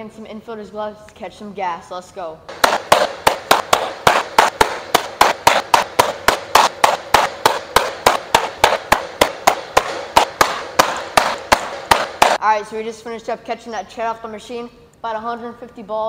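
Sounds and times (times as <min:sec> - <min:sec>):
balls smacking into leather glove: 0:02.5 - 0:12.4.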